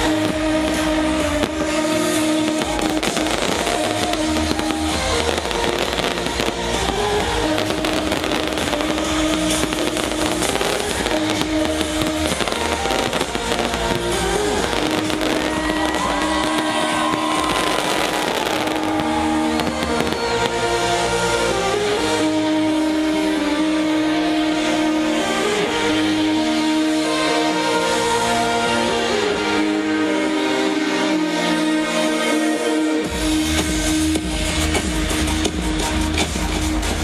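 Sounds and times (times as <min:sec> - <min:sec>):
fireworks crackling and banging: 0:00.0 - 0:22.3
electronic dance music: 0:00.0 - 0:37.0.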